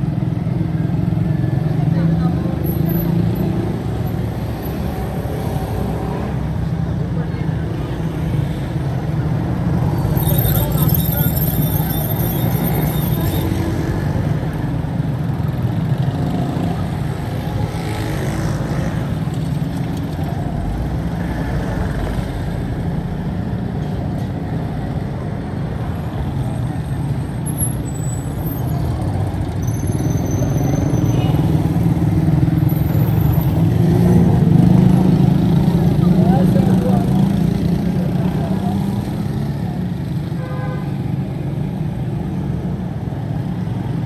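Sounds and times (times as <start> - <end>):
traffic engine rumble: 0.0 - 44.0
voices in background: 34.2 - 40.3.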